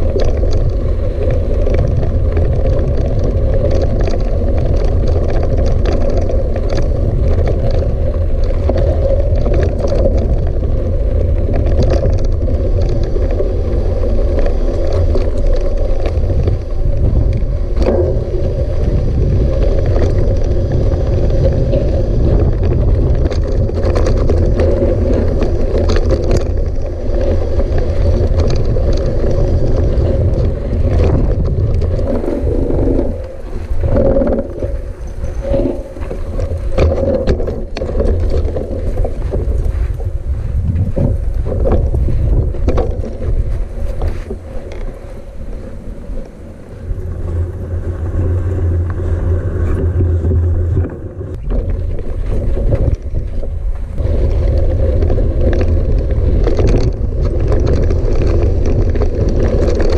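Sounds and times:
bike clicks and rattles: 0:00.0 - 0:59.9
bike tyres rumbling on gravel: 0:00.0 - 0:59.9
wind buffeting microphone: 0:00.0 - 0:59.9.

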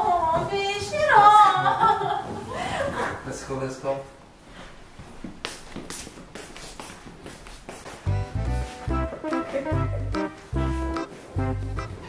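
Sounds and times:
music with heavy bass beat: 0:08.1 - 0:12.0.

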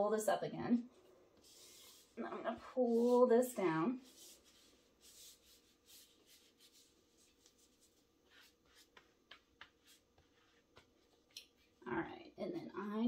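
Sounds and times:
hands rubbing and scratching fabric: 0:01.4 - 0:11.8.

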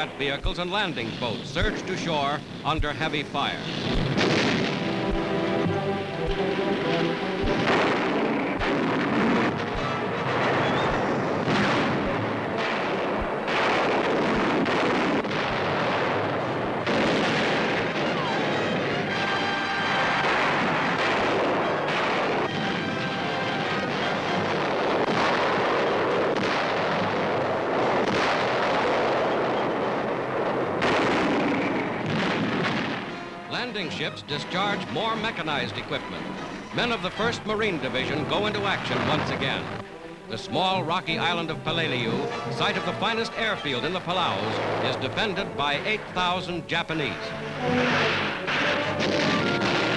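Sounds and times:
music: 0:00.0 - 0:14.8, 0:16.0 - 0:28.1, 0:32.7 - 0:49.9
explosions and gunfire: 0:00.0 - 0:49.9
heavy blasts: 0:00.0 - 0:49.9.

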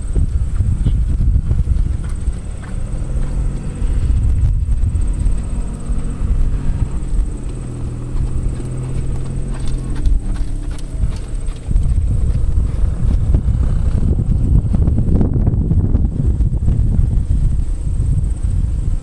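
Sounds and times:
horse hoofbeats on sand: 0:00.0 - 0:17.6
steady low rumble: 0:00.0 - 0:19.0.

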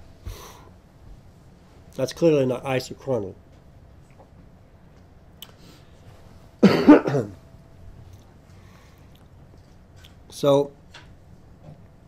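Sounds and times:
person coughing: 0:06.6 - 0:07.4.

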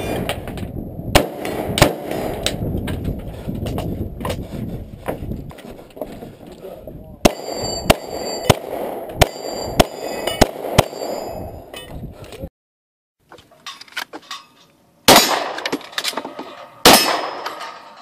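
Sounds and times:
pistol shots: 0:01.2 - 0:02.6, 0:07.2 - 0:11.3, 0:15.1 - 0:15.7, 0:16.8 - 0:17.5
rifle shots: 0:01.2 - 0:02.6, 0:07.3 - 0:11.4, 0:15.1 - 0:15.7, 0:16.8 - 0:17.6
steel targets ringing: 0:07.3 - 0:08.6, 0:09.2 - 0:11.9.

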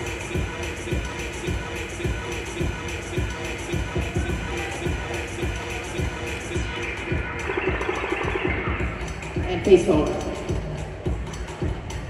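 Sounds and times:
music with steady beat: 0:00.0 - 0:12.0.

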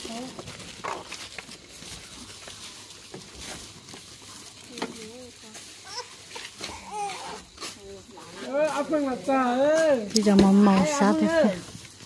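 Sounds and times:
people talking: 0:07.0 - 0:11.7.

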